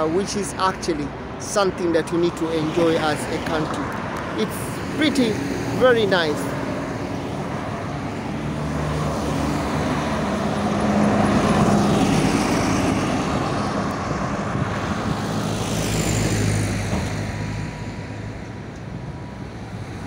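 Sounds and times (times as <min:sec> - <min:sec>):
cars going by: 0:00.0 - 0:20.0.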